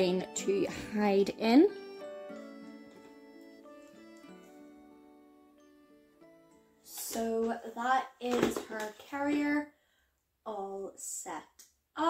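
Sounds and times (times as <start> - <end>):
woman talking: 0.0 - 1.8, 6.9 - 9.7, 10.5 - 12.0.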